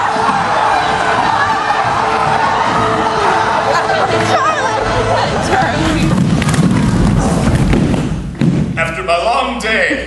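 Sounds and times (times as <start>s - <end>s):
people shouting: 0.0s - 6.2s
bodies thudding on stage floor: 5.6s - 8.8s.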